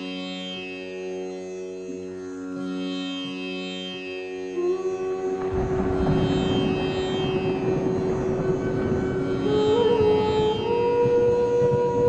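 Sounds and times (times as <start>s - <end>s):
indian classical style music: 0.0s - 12.0s.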